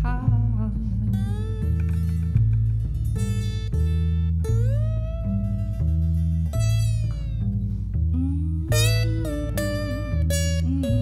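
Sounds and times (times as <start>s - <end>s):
acoustic guitar: 0.0s - 11.0s
held bending melody note: 0.0s - 11.0s
upright bass notes: 0.0s - 11.0s.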